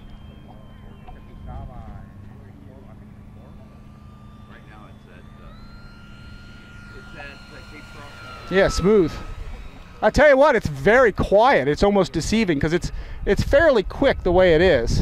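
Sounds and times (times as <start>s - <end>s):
model plane motor whine: 0.0s - 15.0s
wind rumble on microphone: 12.2s - 15.0s.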